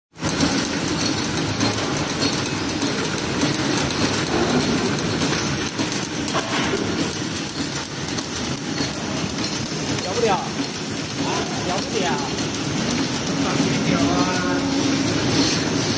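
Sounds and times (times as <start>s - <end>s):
packing machine clattering: 0.2s - 15.9s.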